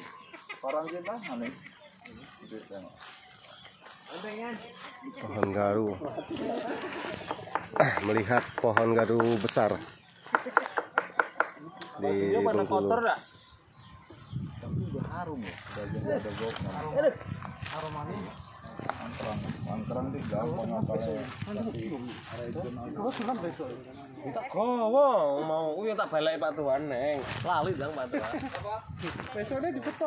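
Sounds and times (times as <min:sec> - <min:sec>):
faint voices talking: 0:00.0 - 0:30.0.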